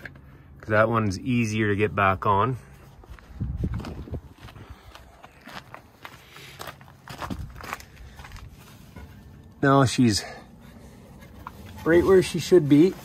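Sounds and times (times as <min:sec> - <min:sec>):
footsteps: 0:02.7 - 0:09.6.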